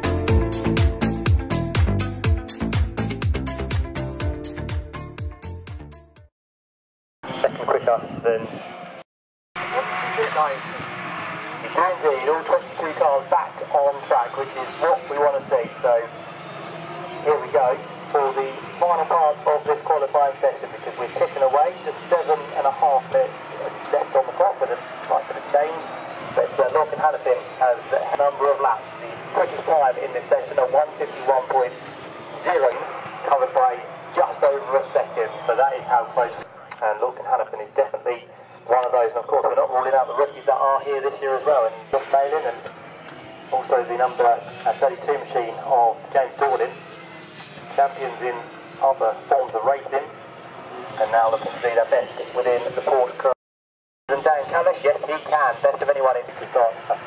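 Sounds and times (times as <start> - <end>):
man commentating over loudspeaker: 7.3 - 8.5, 9.6 - 42.7, 43.5 - 46.9, 47.7 - 50.2, 50.9 - 53.4, 54.1 - 57.0.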